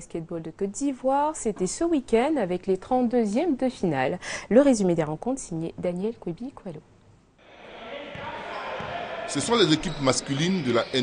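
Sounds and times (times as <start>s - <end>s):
crowd noise: 7.4s - 11.0s
basketball bouncing on court: 8.0s - 9.1s.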